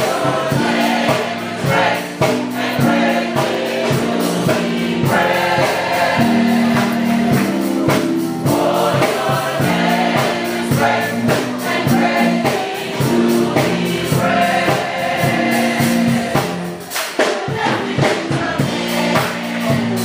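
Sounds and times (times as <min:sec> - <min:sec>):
drums with a steady beat: 0:00.0 - 0:20.0
gospel choir singing: 0:00.0 - 0:20.0
keyboard: 0:00.0 - 0:20.0.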